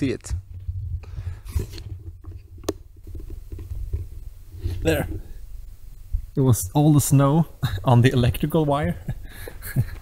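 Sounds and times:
wind rumbling on microphone: 0.0s - 6.5s.

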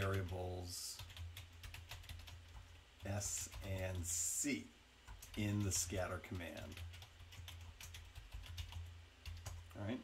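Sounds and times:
low steady hum: 0.0s - 10.0s
keyboard typing clicks: 6.6s - 9.7s.

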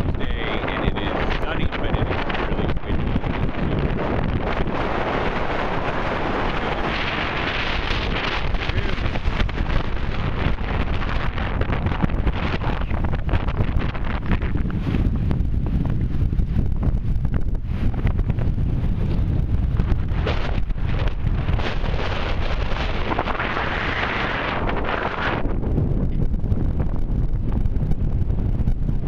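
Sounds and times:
gusty wind on microphone: 0.0s - 29.0s.

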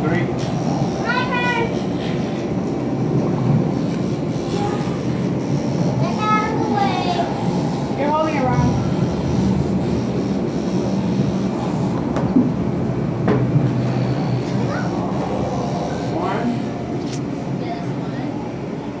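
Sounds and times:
distant voices: 0.0s - 19.0s.

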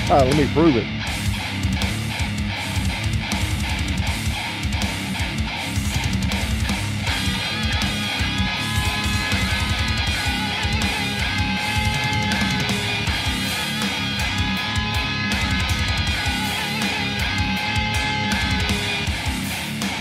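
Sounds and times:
chugging distorted guitar riff: 0.0s - 20.0s
lead guitar high wavering notes: 6.5s - 19.8s.

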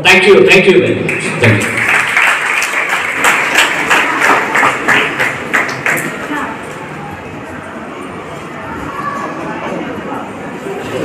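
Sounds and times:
audience applauding: 1.1s - 6.4s.

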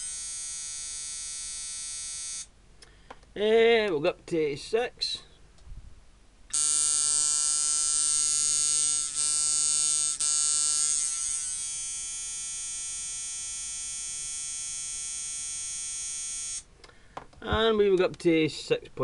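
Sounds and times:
tattoo machine electric buzz: 0.0s - 2.5s, 6.5s - 16.7s.

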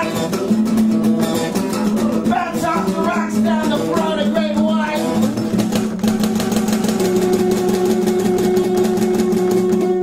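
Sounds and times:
guitar strummed rapidly: 0.0s - 10.0s.

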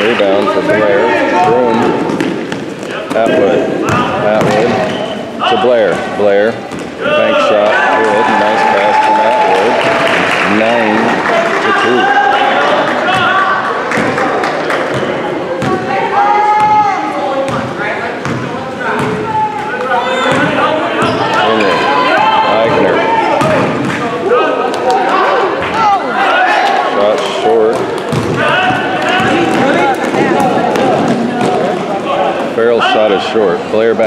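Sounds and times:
indistinct voices echoing: 0.0s - 33.9s
basketball bouncing on gym floor: 1.4s - 5.0s, 17.5s - 19.3s, 27.7s - 31.6s.

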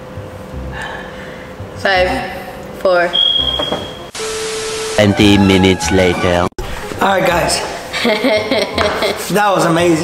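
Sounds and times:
high-pitched electronic beep: 3.1s - 5.8s
static-like hiss: 4.1s - 5.8s.

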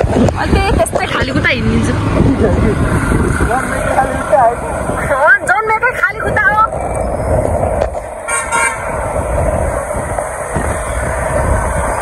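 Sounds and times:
road and wind noise: 0.0s - 12.0s
vehicle horn honk: 8.3s - 8.9s.

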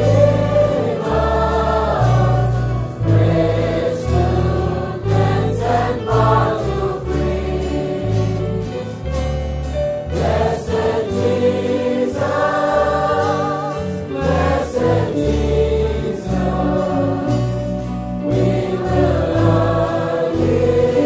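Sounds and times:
choir singing: 0.0s - 9.2s, 10.1s - 21.0s.

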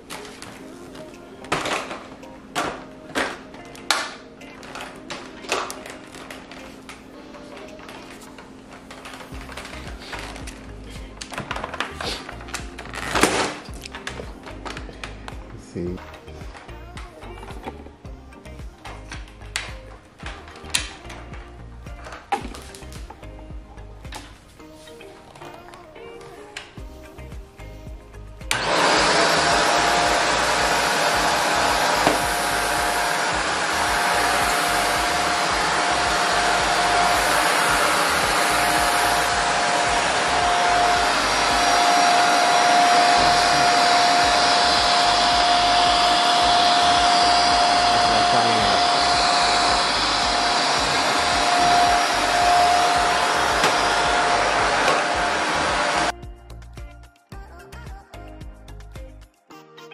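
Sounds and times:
vacuum cleaner running with whine: 28.5s - 56.1s.

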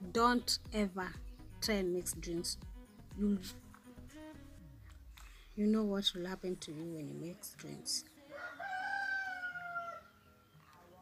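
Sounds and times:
rooster crowing: 8.2s - 10.2s.

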